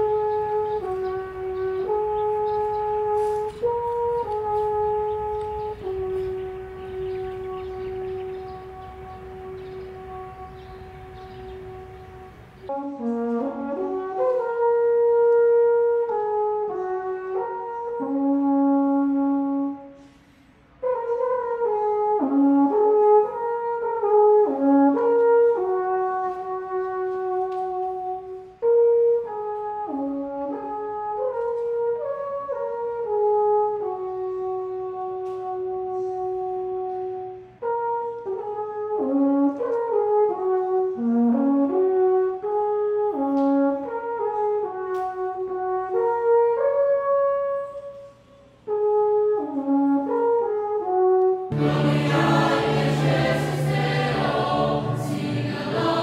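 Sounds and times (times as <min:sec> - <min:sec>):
alphorn melody: 0:00.0 - 0:19.9, 0:49.4 - 0:56.0.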